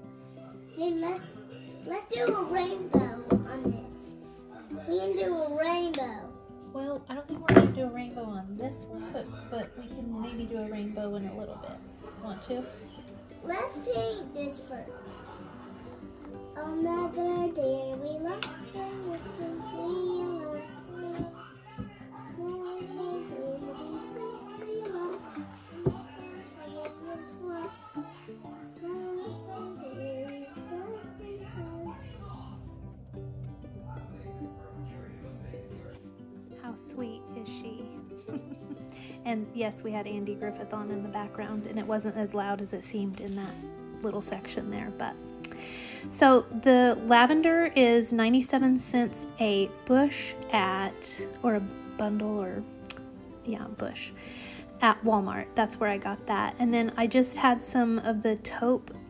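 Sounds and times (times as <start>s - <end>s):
television music: 0.0s - 59.0s
girl singing a melody: 16.6s - 21.4s, 22.3s - 32.0s.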